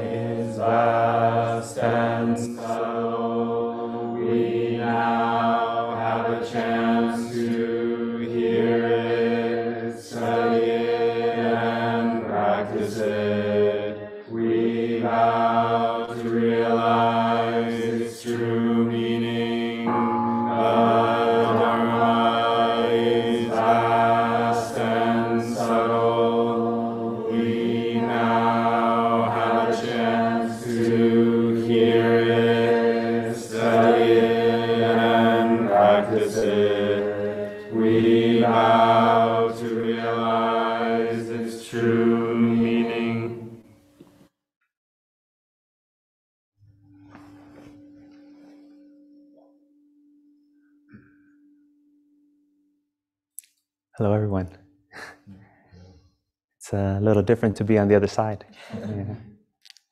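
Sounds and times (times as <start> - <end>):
voices chanting in monotone: 0.0 - 43.6.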